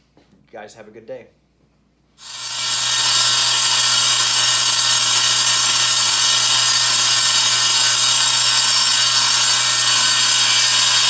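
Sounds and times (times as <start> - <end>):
table saw running: 2.2 - 11.0.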